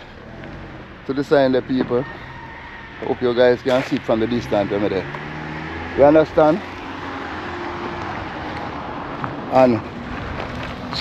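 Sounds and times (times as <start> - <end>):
steady roadside hiss: 0.0 - 11.0.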